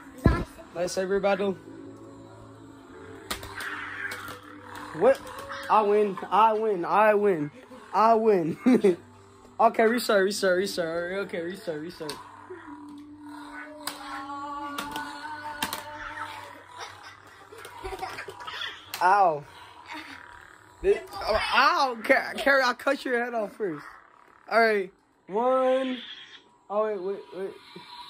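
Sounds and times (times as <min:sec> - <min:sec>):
toy lightsaber electronic hum: 0:00.0 - 0:28.0.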